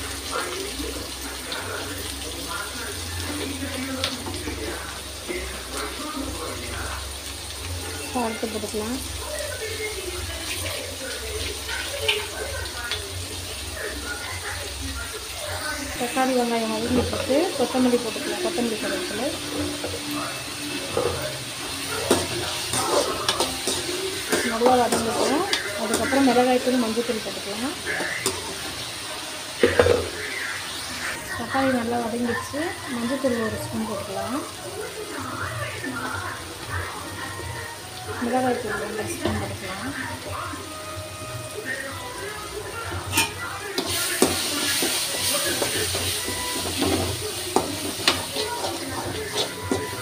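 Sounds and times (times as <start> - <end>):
onions sizzling in oil: 0.0 - 50.0
metal spatula scraping pan: 20.8 - 28.9, 43.0 - 50.0
spoon knocking against pan: 45.6 - 50.0.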